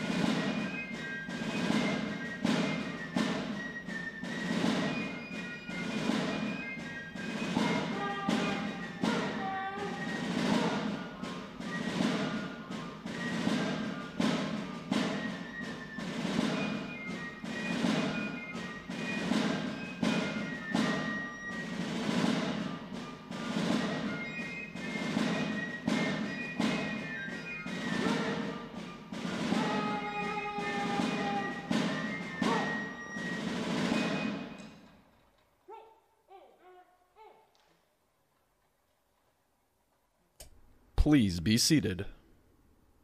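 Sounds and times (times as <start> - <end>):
steady drumbeat: 0.0 - 34.0, 41.0 - 42.1
military band playing march: 0.0 - 34.8.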